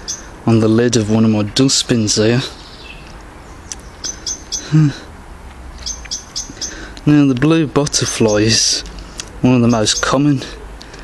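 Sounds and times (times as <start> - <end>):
small bird chirping: 0.0 - 0.4, 2.5 - 4.9, 5.7 - 6.9.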